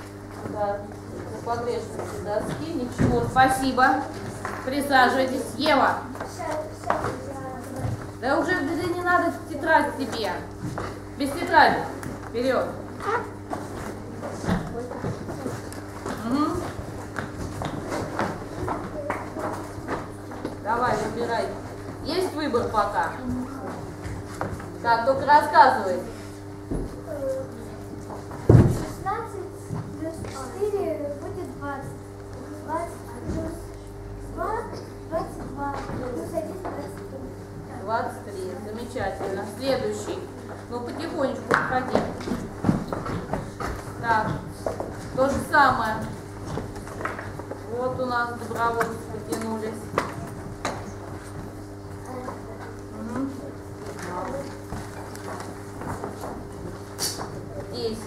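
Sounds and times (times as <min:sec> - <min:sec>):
footsteps: 0:10.1 - 0:25.3, 0:53.8 - 0:58.0
children's voices: 0:28.7 - 0:37.9.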